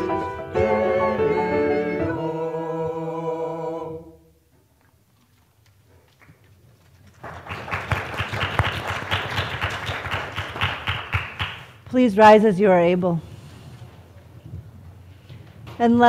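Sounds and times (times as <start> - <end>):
choir singing chord: 0.0 - 4.3
congregation applauding: 6.1 - 11.8.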